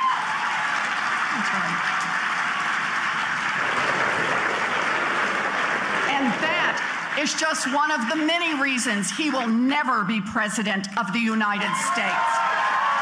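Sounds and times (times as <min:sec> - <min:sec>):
crowd applauding: 0:00.0 - 0:09.4, 0:11.6 - 0:13.0.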